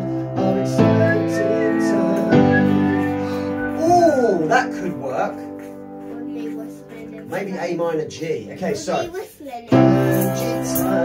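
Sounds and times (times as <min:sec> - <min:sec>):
piano chords ringing: 0:00.0 - 0:11.0.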